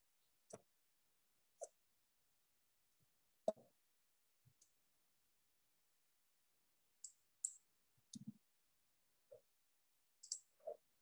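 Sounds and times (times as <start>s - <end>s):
computer mouse clicks: 7.0s - 8.4s, 10.2s - 10.8s.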